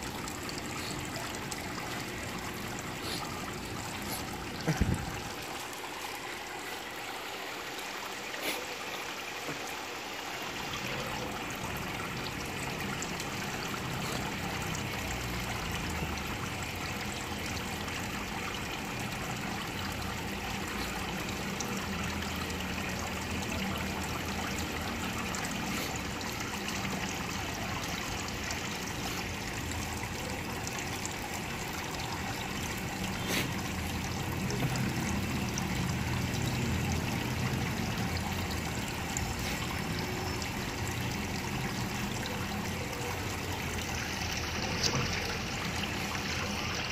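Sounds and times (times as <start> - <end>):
water trickling into fish tank: 0.0 - 46.9.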